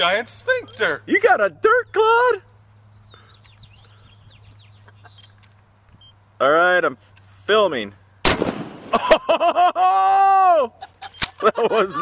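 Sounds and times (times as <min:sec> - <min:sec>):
birds chirping: 0:00.0 - 0:09.1, 0:10.8 - 0:12.0
steady low hum: 0:00.0 - 0:09.8.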